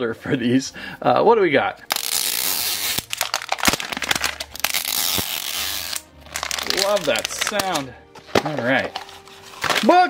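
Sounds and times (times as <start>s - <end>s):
wrapper crinkling and crackling: 1.9s - 10.0s
wrapper tearing: 1.9s - 10.0s.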